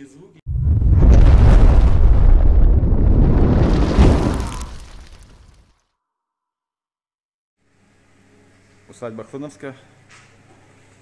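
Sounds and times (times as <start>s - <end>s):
explosive fire burst: 0.5s - 5.6s.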